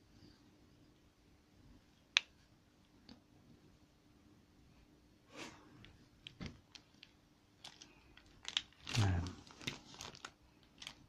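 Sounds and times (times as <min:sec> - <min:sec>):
plastic sheeting crinkling: 0:06.4 - 0:11.0.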